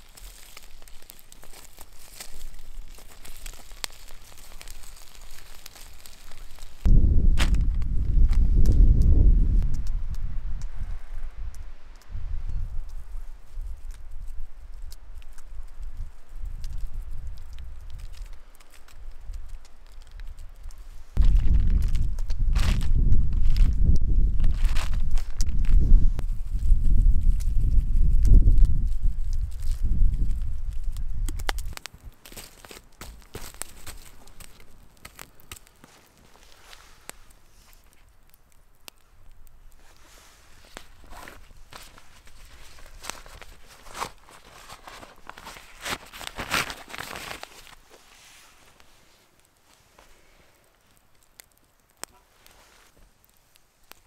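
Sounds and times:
campfire crackling: 0.0 - 54.0
wind buffeting microphone: 6.8 - 14.8, 21.2 - 31.8.

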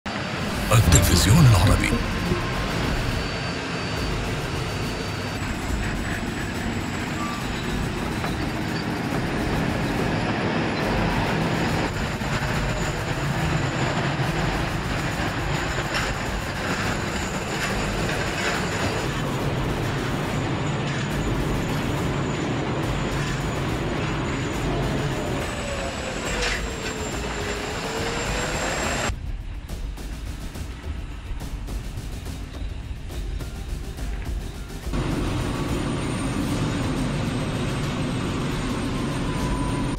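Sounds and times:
tank turbine engine whine and rumble: 0.1 - 39.9.

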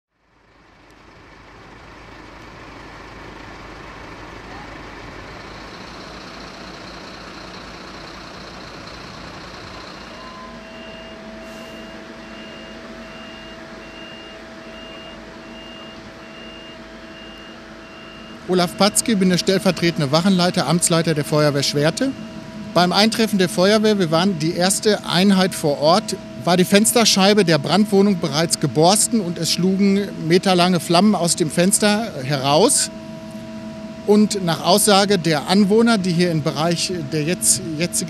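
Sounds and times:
fire engine motors idling: 0.1 - 38.0
steady hum: 5.5 - 38.0
high electronic warning beep: 8.4 - 38.0.

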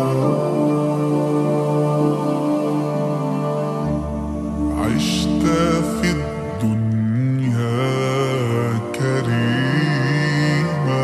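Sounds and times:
male voices singing in harmony: 4.6 - 11.0.

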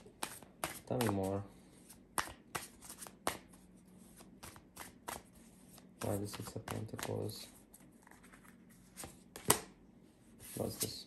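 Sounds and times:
cards being shuffled: 0.0 - 1.4, 2.1 - 9.7.

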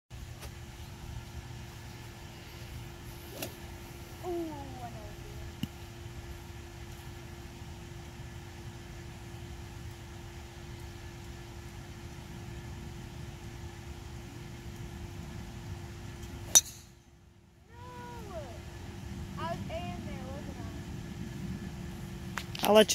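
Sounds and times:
low background hum: 0.1 - 22.9
golf club striking ball: 3.3 - 3.6, 16.5 - 17.0.

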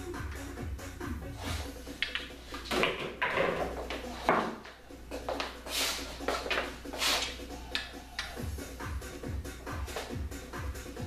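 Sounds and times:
pool balls clacking: 1.9 - 5.6.

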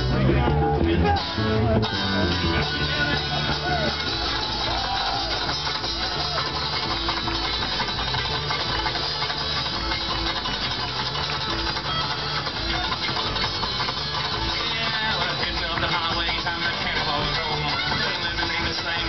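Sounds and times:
banjo: 0.0 - 19.0
fiddle: 0.0 - 19.0
plucked string instrument: 0.0 - 19.0
upright bass line: 0.0 - 19.0.

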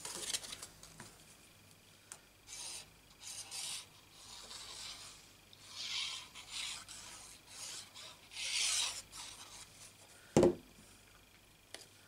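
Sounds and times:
glue nozzle scraping paper: 2.5 - 9.7
card stock rubbing and scraping: 2.5 - 10.0.

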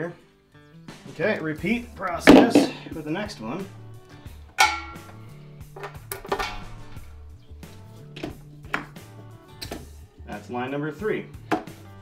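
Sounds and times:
background music: 0.0 - 12.0
metal clacks and clinks on keg: 4.5 - 7.6.

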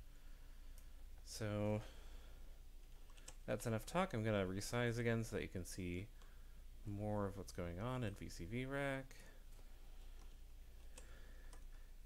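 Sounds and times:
low steady hum: 0.0 - 12.0
computer mouse clicks: 2.8 - 3.5, 9.5 - 11.8.

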